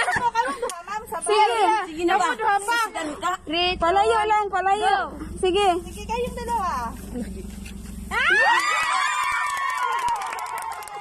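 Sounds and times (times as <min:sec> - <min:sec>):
high-pitched scream: 0:08.1 - 0:10.8.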